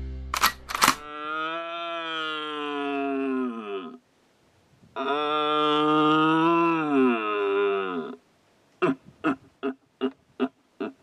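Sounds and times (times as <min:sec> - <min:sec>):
sharp clicks: 0:00.3 - 0:01.1
deer stag roaring: 0:01.0 - 0:04.0.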